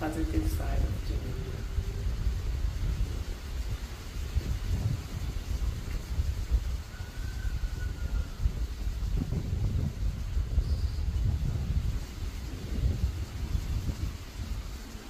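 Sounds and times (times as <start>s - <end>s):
wind buffeting microphone: 0.0s - 15.0s.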